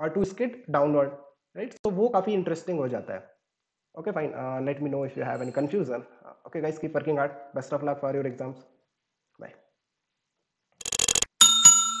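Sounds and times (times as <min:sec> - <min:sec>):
quick run of clicks: 0:10.8 - 0:11.4
small bell ringing: 0:11.3 - 0:12.0.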